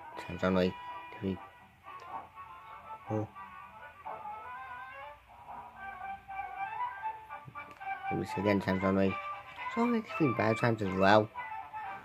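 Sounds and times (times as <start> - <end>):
slow instrumental melody: 0.0 - 12.0.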